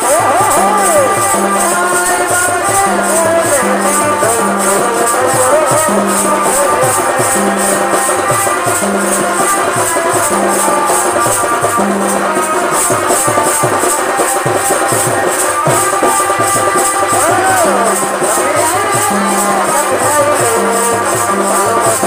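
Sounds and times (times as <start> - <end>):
drums with pitch-bending strokes: 0.0 - 22.0
jingling percussion beat: 0.0 - 22.0
wavering melody line: 14.9 - 22.0.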